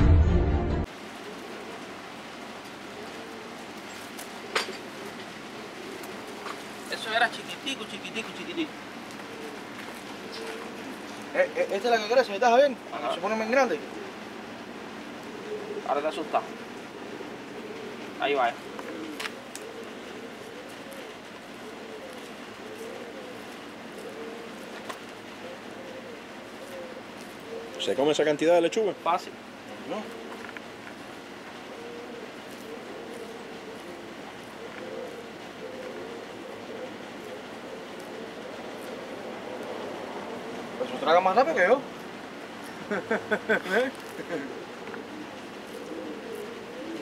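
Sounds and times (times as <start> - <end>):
outdoor background hiss: 0.4 - 47.0
dove cooing: 0.9 - 47.0.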